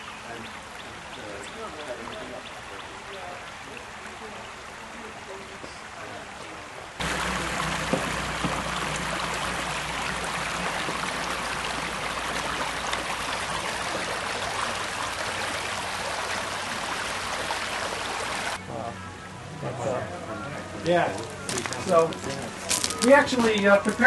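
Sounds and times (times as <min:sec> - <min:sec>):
creek water running over rocks: 0:00.0 - 0:18.6, 0:20.9 - 0:24.0.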